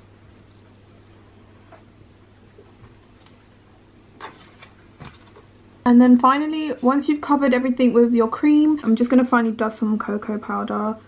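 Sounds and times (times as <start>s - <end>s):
woman speaking: 5.9s - 11.0s.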